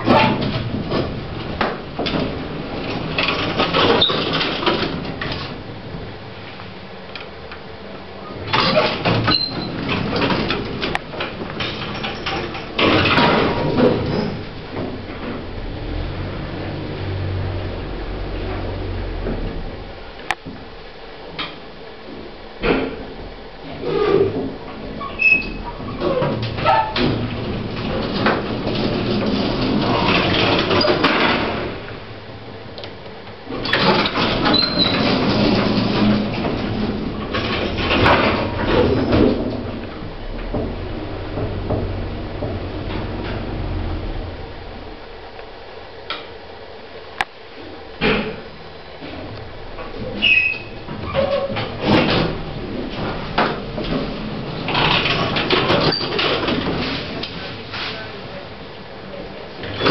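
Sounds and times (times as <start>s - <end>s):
lift doors clattering shut: 0.0s - 6.1s, 8.3s - 20.7s, 21.3s - 32.1s, 33.5s - 45.6s, 47.6s - 58.1s
lift motor humming: 0.0s - 57.4s.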